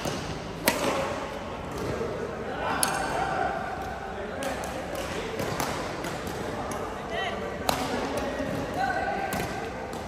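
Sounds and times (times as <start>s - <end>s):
racket striking shuttlecock: 0.0s - 1.1s
players' voices: 0.7s - 10.0s.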